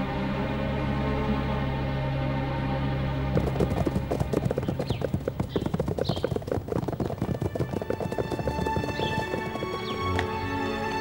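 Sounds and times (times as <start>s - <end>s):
background score music: 0.0s - 5.2s, 7.4s - 11.0s
horse hooves clip-clopping fast: 3.3s - 11.0s.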